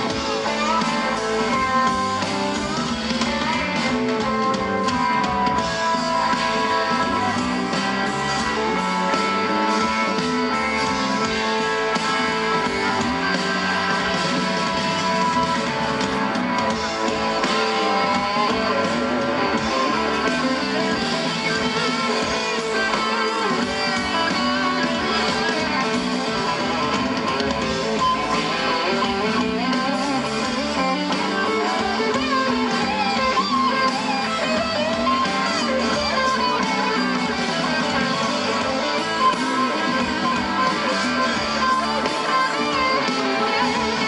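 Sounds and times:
rock band playing electric guitars: 0.0s - 44.0s.

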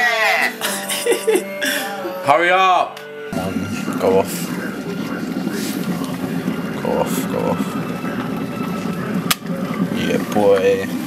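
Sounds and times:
electric kettle heating water: 3.4s - 11.0s.

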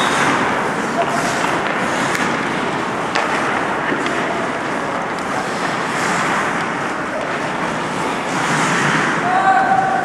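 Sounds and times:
skates hissing on ice: 7.4s - 9.2s.

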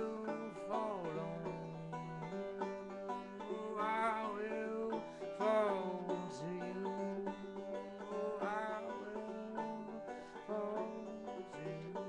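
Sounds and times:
banjo playing: 0.0s - 12.0s
long held notes: 0.0s - 12.0s.

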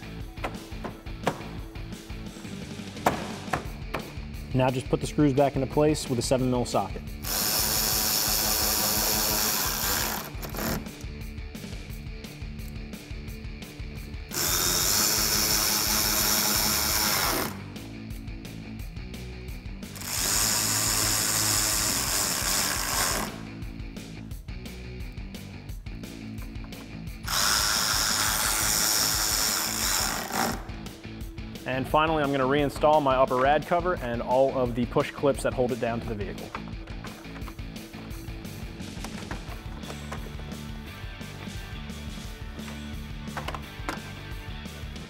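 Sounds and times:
background music: 0.0s - 45.0s
electric ratchet running: 7.2s - 11.0s, 14.3s - 17.7s, 19.9s - 23.5s, 27.2s - 30.8s.

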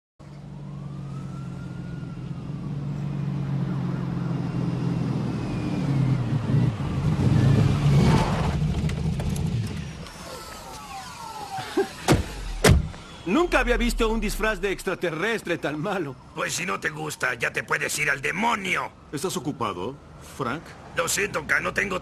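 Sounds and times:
low traffic engine hum: 0.2s - 22.0s
siren wailing: 0.4s - 8.0s, 10.0s - 18.8s
vehicle rushing past: 0.7s - 8.8s, 12.4s - 15.0s.

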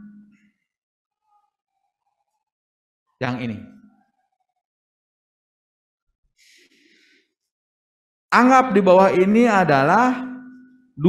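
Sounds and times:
faint intake of breath: 6.4s - 7.3s.

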